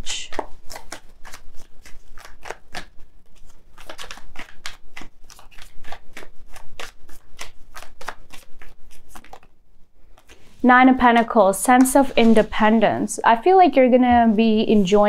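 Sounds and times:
cards being shuffled: 0.2 - 10.6.

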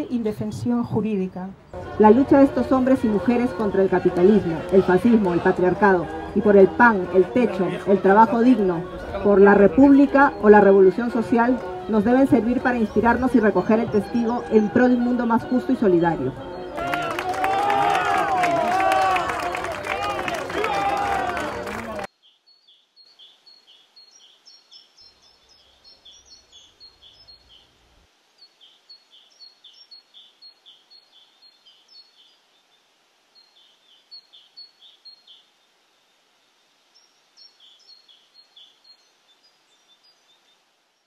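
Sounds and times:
loud voices: 1.8 - 22.1
small birds chirping: 22.1 - 41.0.

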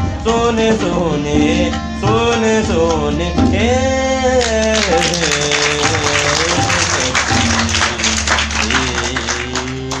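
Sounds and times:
harmonium sustained notes: 0.0 - 10.0
audience applause: 4.4 - 10.0.

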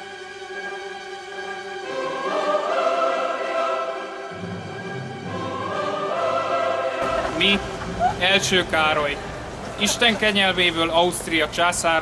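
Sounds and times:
choir singing held chords: 0.0 - 10.5
orchestral accompaniment: 0.0 - 10.9
deep bass voices singing: 1.9 - 8.2.

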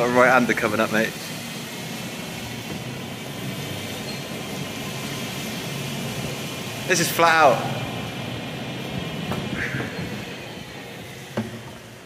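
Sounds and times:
truck driving in tunnel: 0.0 - 12.0.

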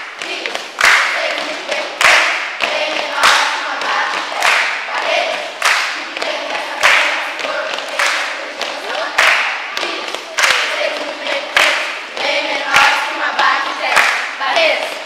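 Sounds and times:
loud clapping in unison: 0.0 - 13.1, 13.7 - 15.0
children singing together: 0.0 - 15.0.

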